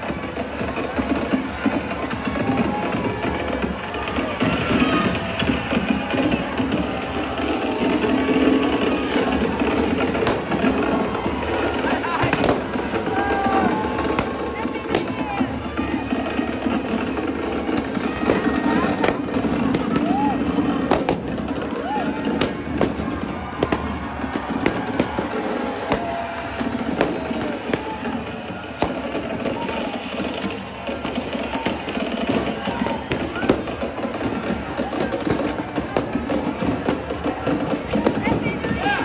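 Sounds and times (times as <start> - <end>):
crowd chatter: 0.0 - 39.0
fireworks crackling: 0.0 - 39.0
music: 0.0 - 39.0.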